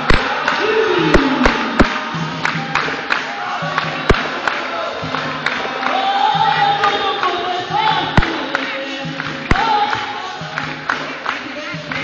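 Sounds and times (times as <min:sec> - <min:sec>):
group singing in chorus: 0:00.0 - 0:12.0
pitched musical accompaniment: 0:00.0 - 0:12.0
sharp percussive strikes: 0:00.0 - 0:12.0.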